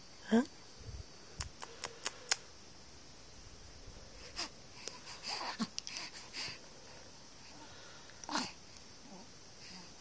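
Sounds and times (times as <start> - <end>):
baby vocal noises: 4.2 - 6.5, 8.2 - 9.9
baby grunting: 5.2 - 6.2.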